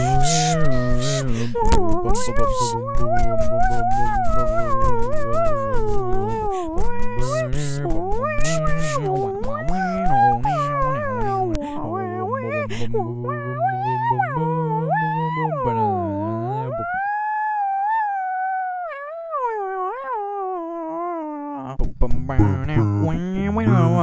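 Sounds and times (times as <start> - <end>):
a cappella voices singing chords: 0.0 - 17.0, 22.1 - 24.0
high voice gliding and wavering: 0.0 - 24.0.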